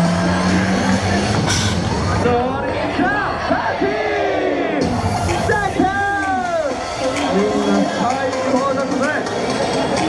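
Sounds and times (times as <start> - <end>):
loud parade music: 0.0 - 10.0.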